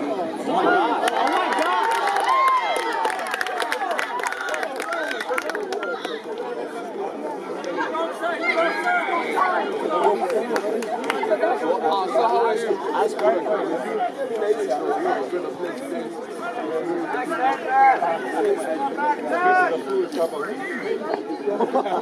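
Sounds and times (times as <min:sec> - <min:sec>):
babble of overlapping chatter: 0:00.0 - 0:22.0.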